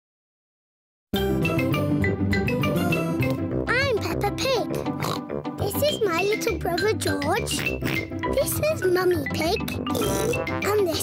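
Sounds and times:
light background music: 1.2s - 11.0s
cartoon pig voice: 3.7s - 8.7s, 9.9s - 11.0s
pig snort: 5.0s - 5.3s, 9.9s - 10.5s.

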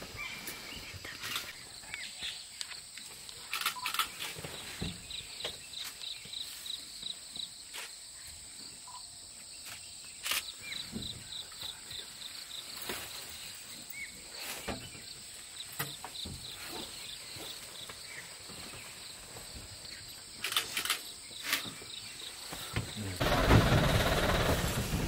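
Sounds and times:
insect chirps: 0.0s - 24.9s
insects whining: 0.0s - 25.0s
sharp clicks: 2.6s - 4.2s, 20.4s - 21.6s.

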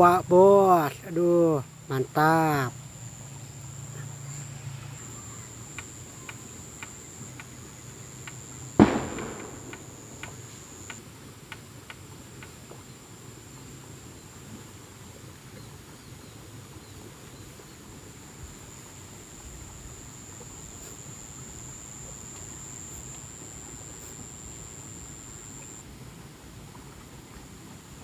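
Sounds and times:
high-pitched insect whine: 0.0s - 11.0s, 18.1s - 25.8s
faint ticks: 3.8s - 12.9s, 19.9s - 25.8s
loud thump: 8.8s - 10.3s.

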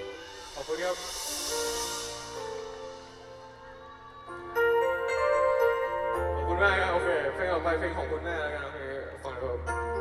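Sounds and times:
high hiss: 0.0s - 4.5s
keyboard sustained chords: 0.0s - 10.0s.

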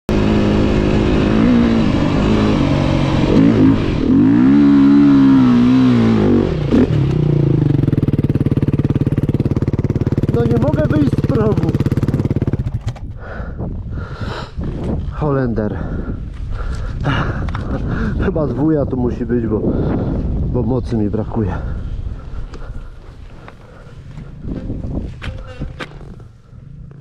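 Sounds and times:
dirt bike engine revving: 0.1s - 13.2s.

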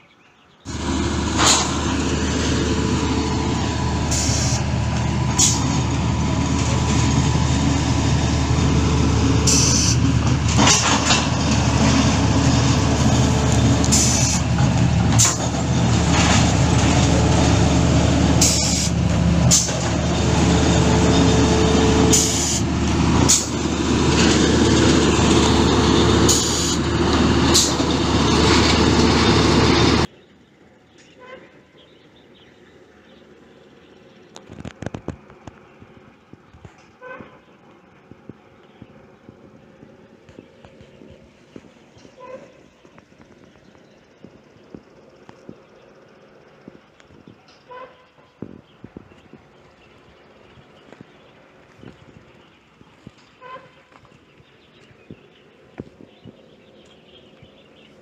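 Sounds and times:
engine or winch hum: 0.6s - 30.2s.

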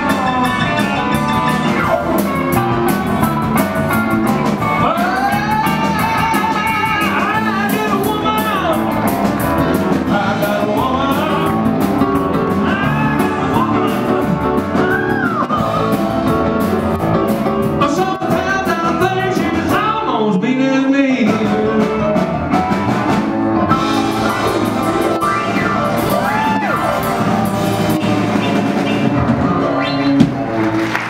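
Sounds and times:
person singing: 0.0s - 16.3s, 17.3s - 22.5s
drum kit: 0.0s - 20.4s, 21.1s - 31.0s
electric guitar: 0.0s - 20.4s, 21.1s - 31.0s.

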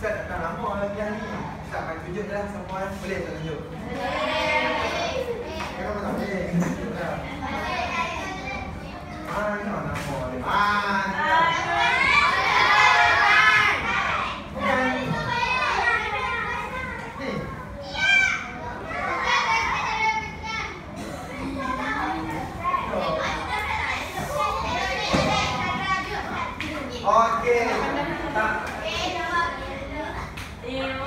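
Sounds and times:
children talking and calling out: 3.7s - 6.4s, 7.0s - 9.7s, 10.6s - 31.0s.

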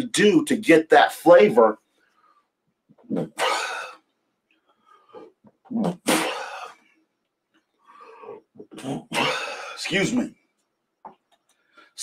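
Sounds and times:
man coughing: 3.2s - 4.0s, 5.7s - 6.8s, 8.9s - 9.8s.

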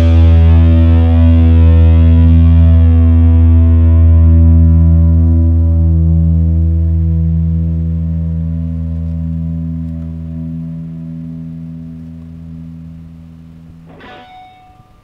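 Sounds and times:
distorted guitar chord ringing: 0.0s - 15.0s.

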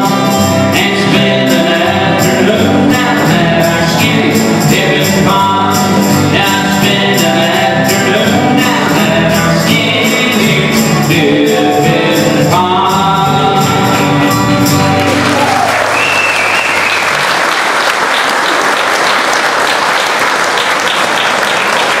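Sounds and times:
men singing country song: 0.0s - 15.6s
acoustic guitars: 0.0s - 17.4s
audience applauding: 14.8s - 22.0s.

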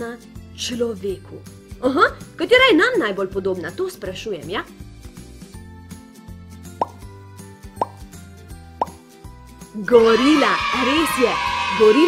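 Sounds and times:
light background music: 0.0s - 12.0s
rising plop sound effect: 6.8s - 7.0s, 7.8s - 8.0s, 8.8s - 9.0s.

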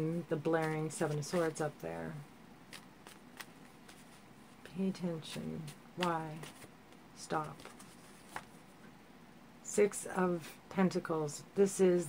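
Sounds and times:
cards clicking while shuffled: 2.7s - 4.1s, 6.0s - 8.5s.

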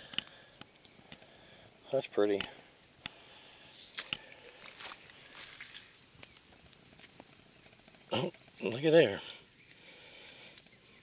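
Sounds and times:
stone scuffing on dry dirt: 3.8s - 7.2s.

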